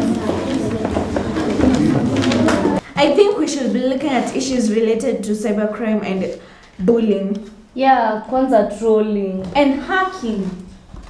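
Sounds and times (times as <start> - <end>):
murmur of voices: 0.0 - 3.0.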